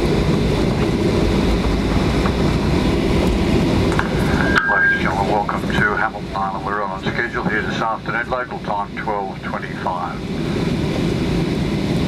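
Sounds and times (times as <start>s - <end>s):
airliner cabin rumble: 0.0s - 12.0s.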